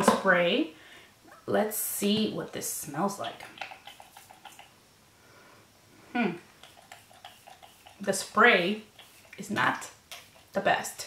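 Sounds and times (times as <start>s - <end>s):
woman humming hmm: 6.1s - 6.5s.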